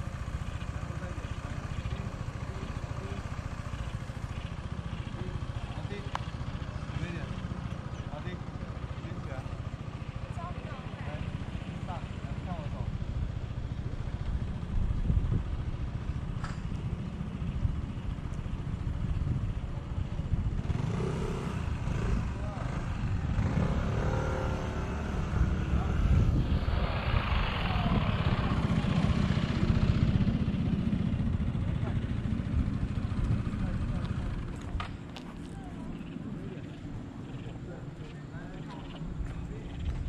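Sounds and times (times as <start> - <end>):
indistinct voices talking: 0.0 - 14.7, 21.5 - 40.0
wind buffeting microphone: 13.2 - 20.9, 24.9 - 37.5.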